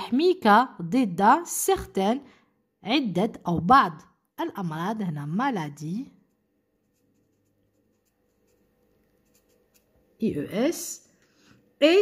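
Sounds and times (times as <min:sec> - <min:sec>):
marker scratching on paper: 0:06.2 - 0:10.0.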